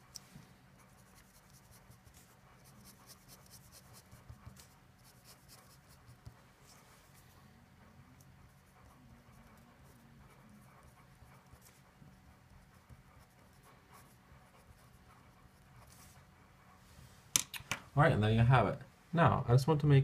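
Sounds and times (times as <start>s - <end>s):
pen scratching on paper: 0.0s - 16.6s.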